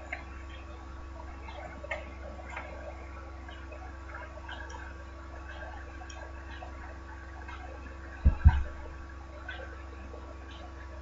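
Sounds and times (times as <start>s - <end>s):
steady low hum: 0.0s - 11.0s
dull low thumps: 8.1s - 9.1s.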